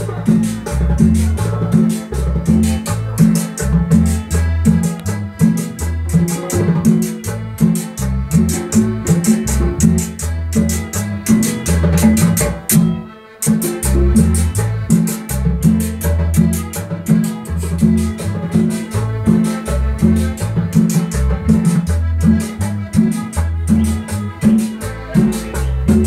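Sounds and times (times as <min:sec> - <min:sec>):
live band with guitars: 0:00.0 - 0:26.0
repeating bass line: 0:00.0 - 0:26.0.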